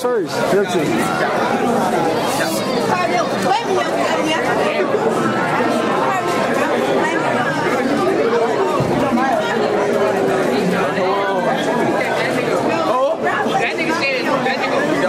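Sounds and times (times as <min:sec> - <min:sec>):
overlapping teenage chatter: 0:00.0 - 0:15.0.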